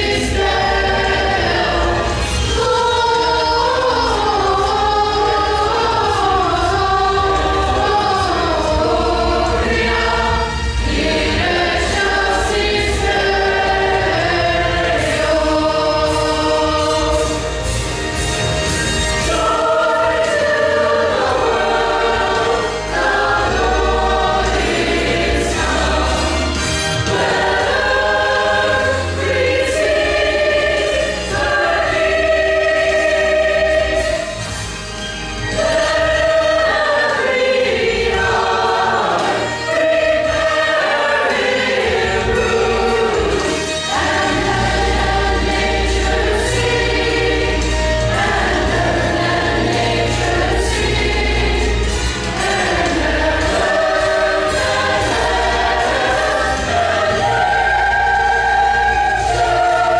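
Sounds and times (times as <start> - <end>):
choir singing in parts: 0.0 - 59.9
instrumental accompaniment: 0.0 - 59.9.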